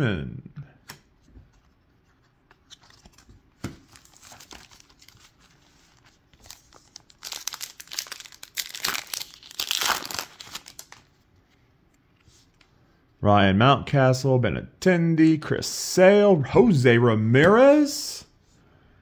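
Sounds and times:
wrapper crinkling and tearing: 3.8s - 11.1s.

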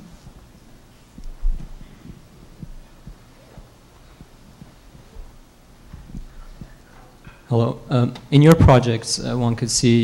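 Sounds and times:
soft low thumps: 0.0s - 7.2s
steady low hum: 0.0s - 10.0s.

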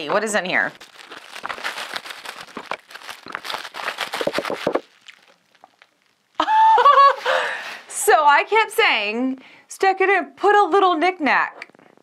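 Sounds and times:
plastic wrap crinkling: 0.0s - 7.7s.

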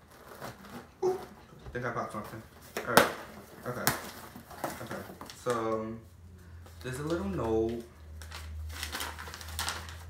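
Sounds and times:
paper crinkling: 0.0s - 1.3s, 6.8s - 10.0s.

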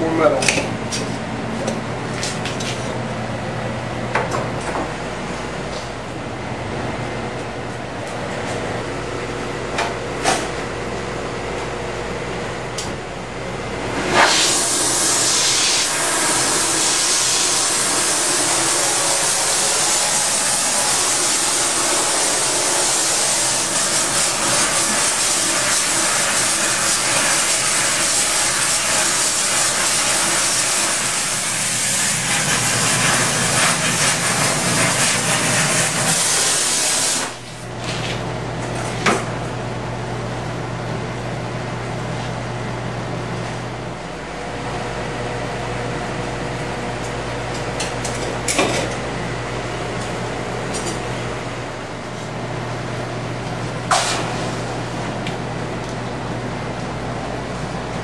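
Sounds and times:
torch flame hissing: 14.0s - 37.5s
gas torch lighting pop: 53.9s - 54.3s.

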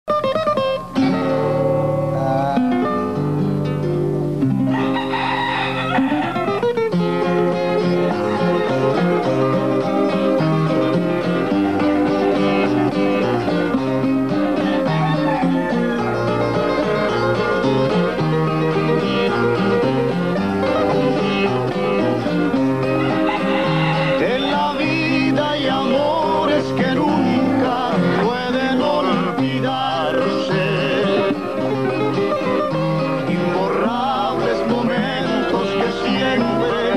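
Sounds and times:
plucked guitars playing bolero: 0.1s - 36.9s.

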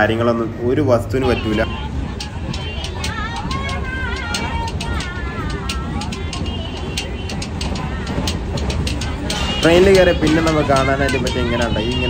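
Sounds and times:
faint passenger voices: 0.0s - 12.0s
train rumble: 0.0s - 12.0s
sharp clicks and rattles: 1.2s - 12.0s.

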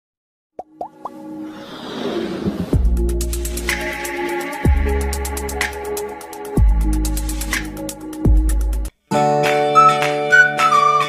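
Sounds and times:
rising plops: 0.6s - 2.9s
whoosh: 1.4s - 3.8s.

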